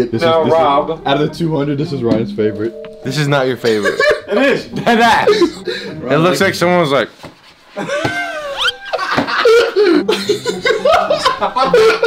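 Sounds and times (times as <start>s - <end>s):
men laughing loudly: 3.8s - 6.0s, 7.8s - 12.0s.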